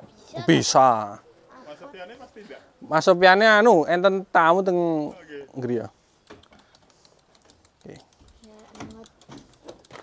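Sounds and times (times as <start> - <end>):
hooves knocking on wooden slats: 8.2 - 10.0.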